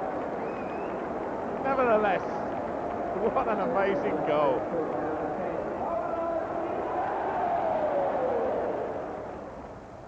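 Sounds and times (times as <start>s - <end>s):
stadium crowd cheering and chanting: 0.0s - 9.7s.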